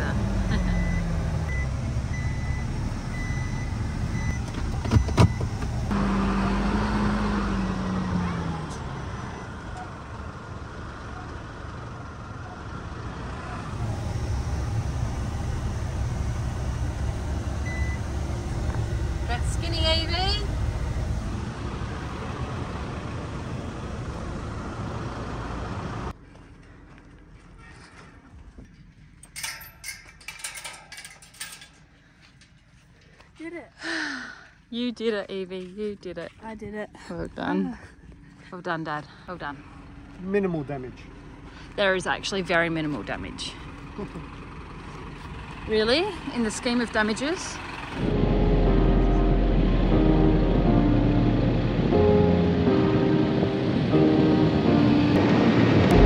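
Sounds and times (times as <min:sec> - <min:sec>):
diesel truck engine running: 0:00.0 - 0:27.6, 0:35.2 - 0:56.0
metal gate clanking: 0:29.2 - 0:32.5.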